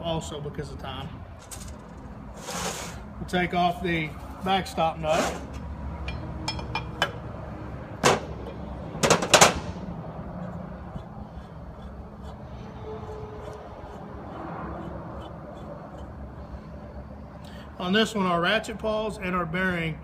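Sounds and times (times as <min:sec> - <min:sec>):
steady low hum: 0:05.4 - 0:20.0
metal clanks on steel workbench: 0:06.1 - 0:07.2.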